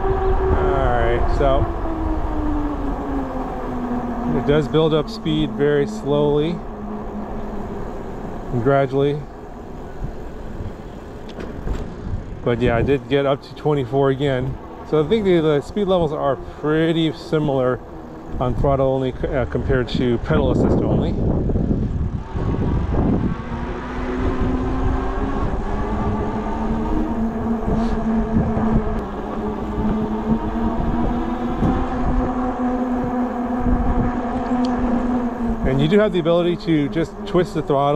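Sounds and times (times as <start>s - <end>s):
electric bike motor hum: 0.0s - 37.9s
tyre road noise: 0.0s - 37.9s
wind buffeting microphone: 0.0s - 37.9s.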